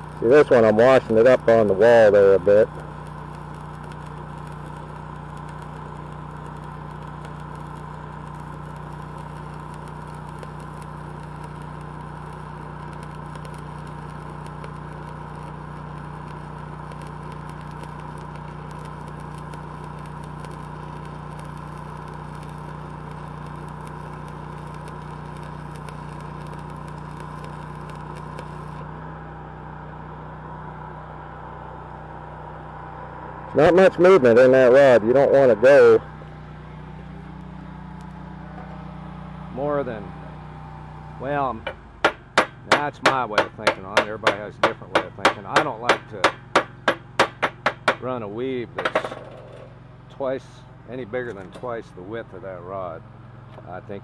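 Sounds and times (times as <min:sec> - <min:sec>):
welding arc crackling: 0:00.0 - 0:29.0, 0:33.6 - 0:50.2
welder engine running: 0:00.0 - 0:54.0.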